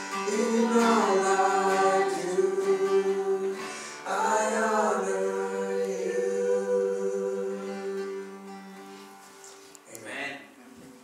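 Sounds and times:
people singing held notes: 0.0 - 9.2
acoustic guitar chord: 0.0 - 9.6.

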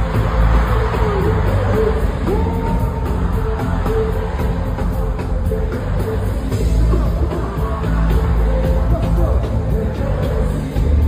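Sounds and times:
afrobeats concert music: 0.0 - 11.0
heavy bass: 0.0 - 11.0.

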